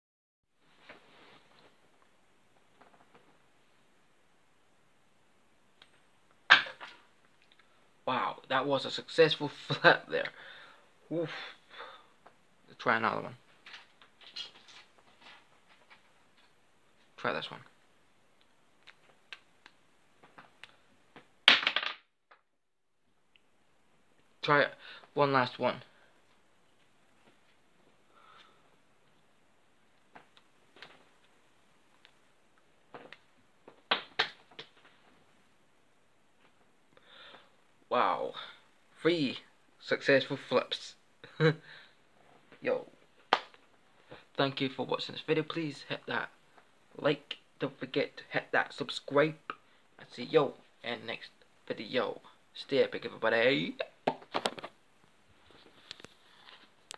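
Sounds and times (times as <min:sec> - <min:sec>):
coin landing smack: 0:21.5 - 0:22.1.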